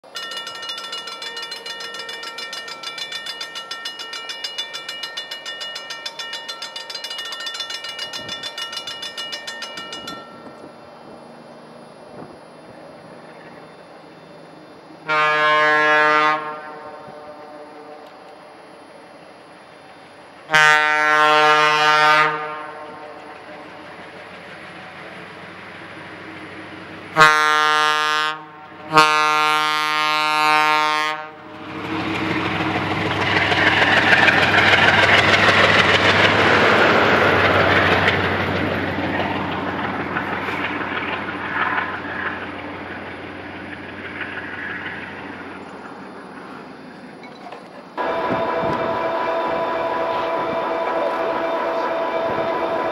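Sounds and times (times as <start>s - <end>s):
railroad crossing bell ringing: 0.0s - 16.1s, 18.3s - 52.9s
train engine and plowed snow rushing: 0.0s - 52.9s
locomotive air horn blasts: 15.0s - 18.2s, 20.5s - 23.4s, 27.1s - 31.5s, 48.0s - 52.9s.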